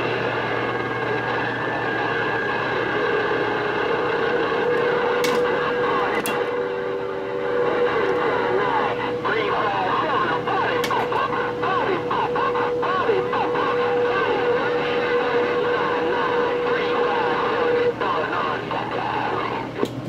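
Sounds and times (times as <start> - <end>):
radio static hiss: 0.0 - 19.9
garbled radio voices: 0.3 - 19.8.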